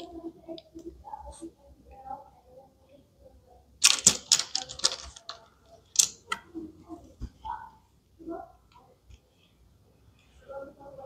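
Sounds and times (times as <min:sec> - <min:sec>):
plastic toy pieces clicking: 0:03.8 - 0:06.4.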